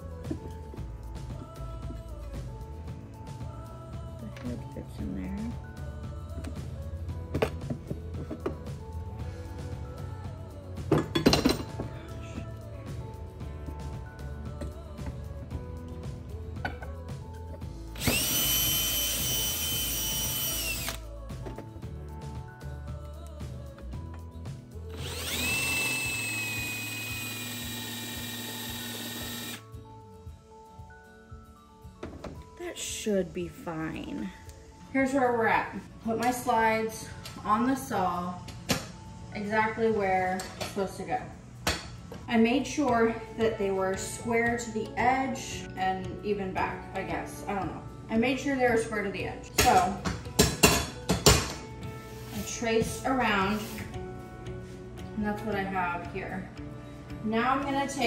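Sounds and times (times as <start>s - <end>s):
background music: 0.0s - 58.0s
cordless drill boring through metal: 18.0s - 21.0s, 24.9s - 29.6s.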